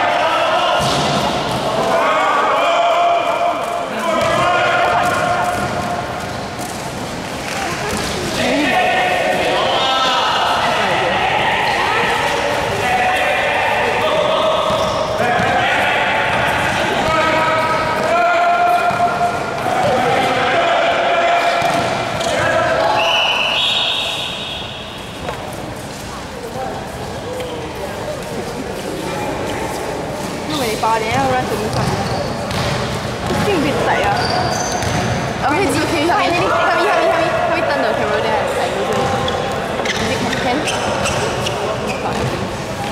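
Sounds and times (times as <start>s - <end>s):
players shouting: 0.0s - 6.2s, 8.4s - 25.0s
basketball dribbling: 31.1s - 35.3s, 38.9s - 39.3s.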